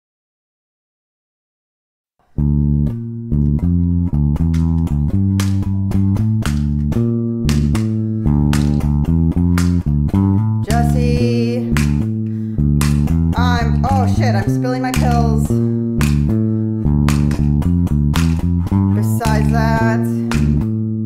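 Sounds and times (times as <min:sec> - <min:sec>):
bass guitar riff: 0:02.2 - 0:21.0.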